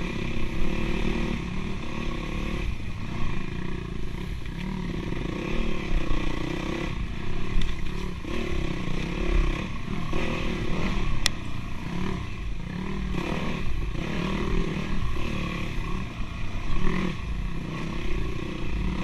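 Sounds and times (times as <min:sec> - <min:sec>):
dirt bike engine revving: 0:00.0 - 0:19.0.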